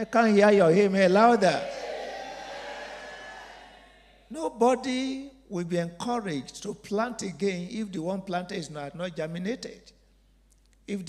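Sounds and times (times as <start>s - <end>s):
congregation saying amen: 0.0s - 1.9s.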